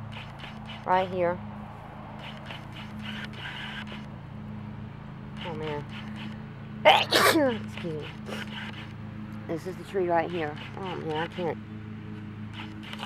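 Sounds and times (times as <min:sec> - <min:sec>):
steady low hum: 0:00.0 - 0:13.0
woman sneezing: 0:06.9 - 0:07.5.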